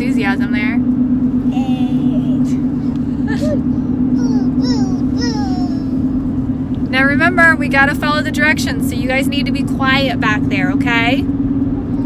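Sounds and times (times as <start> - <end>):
car engine and road drone: 0.0 - 12.0
child vocal sound: 1.5 - 2.6, 3.3 - 6.0.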